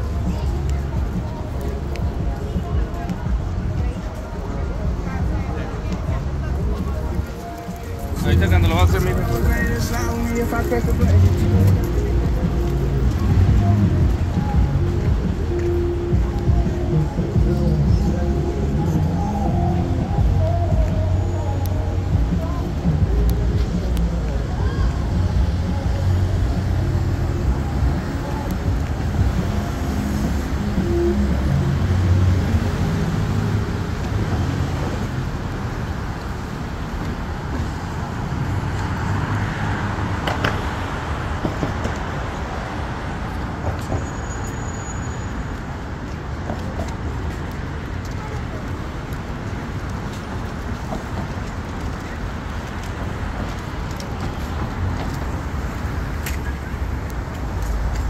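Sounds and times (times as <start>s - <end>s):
cars driving past: 6.2s - 58.0s.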